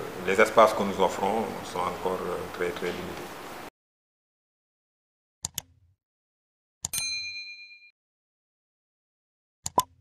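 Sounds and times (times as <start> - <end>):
bright bell ding: 6.9 - 7.9.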